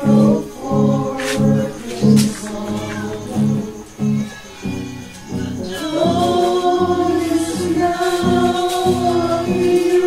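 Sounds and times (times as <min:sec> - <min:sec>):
group singing: 0:00.0 - 0:04.5, 0:05.4 - 0:10.0
acoustic guitar: 0:00.0 - 0:10.0.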